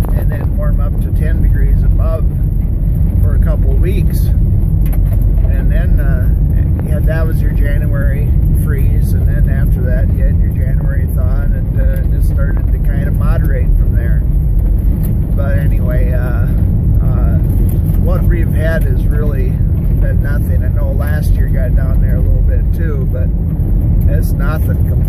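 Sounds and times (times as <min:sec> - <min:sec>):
man talking: 0:00.0 - 0:02.4, 0:03.2 - 0:04.4, 0:05.5 - 0:14.3, 0:15.4 - 0:23.3, 0:24.0 - 0:25.0
car engine: 0:00.0 - 0:25.0
tyres rumbling on gravel: 0:00.0 - 0:25.0.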